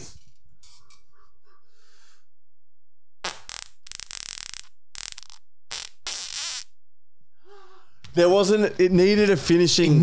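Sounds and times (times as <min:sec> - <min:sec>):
person farting: 0:03.2 - 0:06.7.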